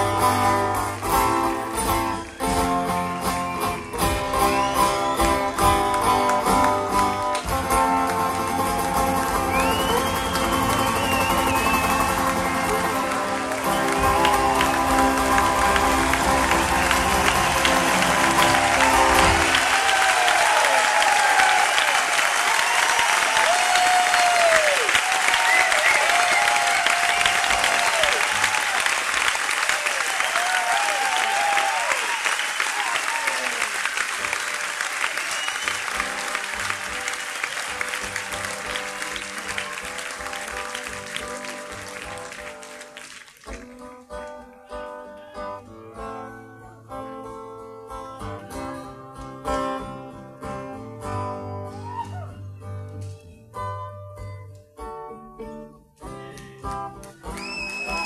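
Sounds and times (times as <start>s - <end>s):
acoustic guitar song: 0.0s - 19.7s, 35.4s - 58.0s
crowd applause and cheering: 0.0s - 45.4s, 51.5s - 53.2s, 56.2s - 58.0s
whistles from crowd: 2.1s - 5.6s, 9.3s - 15.0s, 22.5s - 28.4s, 30.2s - 33.5s, 35.0s - 36.2s, 57.3s - 58.0s.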